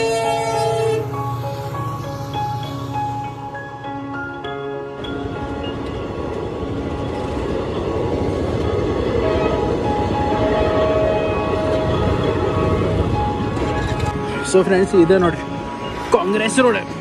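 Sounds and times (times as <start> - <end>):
background music: 0.0 - 17.0
train wheels rumbling on rails: 4.4 - 17.0.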